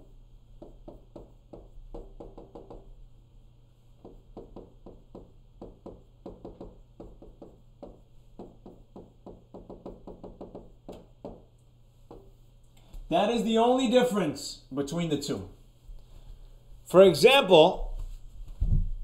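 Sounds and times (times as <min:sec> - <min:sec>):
faint steady hum: 0:00.0 - 0:19.0
stylus tapping and scratching glass: 0:00.6 - 0:03.0, 0:04.0 - 0:12.4.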